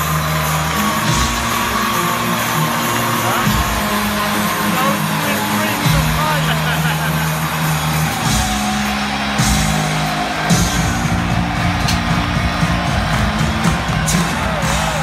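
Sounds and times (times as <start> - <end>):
arena music over loudspeakers: 0.0 - 15.0
crowd: 0.0 - 15.0.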